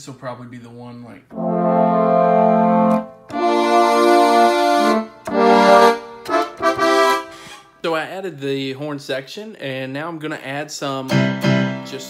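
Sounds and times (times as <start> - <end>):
keyboard brass horn chords: 1.3 - 7.6.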